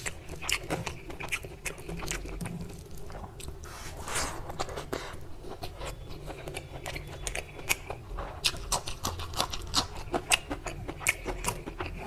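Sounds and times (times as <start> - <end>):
wet chewing with mouth clicks: 0.0 - 12.0.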